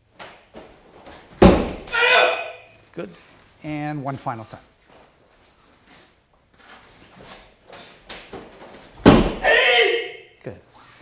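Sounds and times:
body thudding onto a padded mat: 1.3s - 1.9s, 9.0s - 9.4s
person shouting: 1.9s - 2.7s, 9.4s - 10.2s
light scuffs on a mat: 4.7s - 9.4s.

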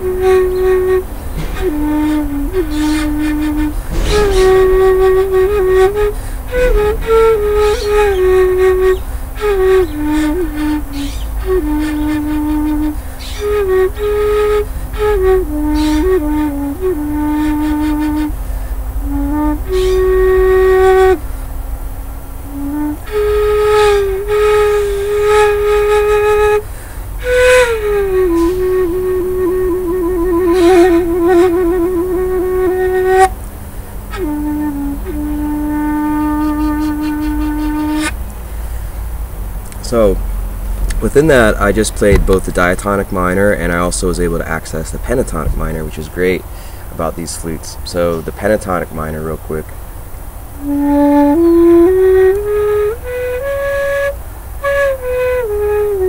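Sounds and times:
bamboo flute slow melody: 0.0s - 49.7s, 50.4s - 56.0s.

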